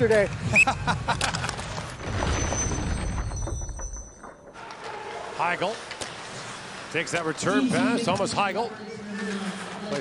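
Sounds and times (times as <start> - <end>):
hockey sticks clacking: 3.9 - 8.4.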